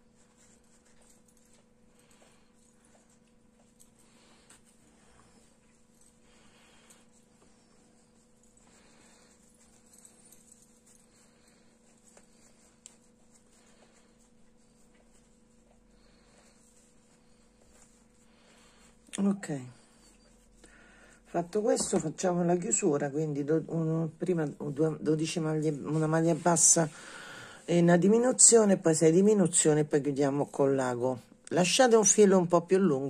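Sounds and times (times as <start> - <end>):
steady low hum: 0.0 - 32.2
soft rustling of stuffing: 0.0 - 32.4.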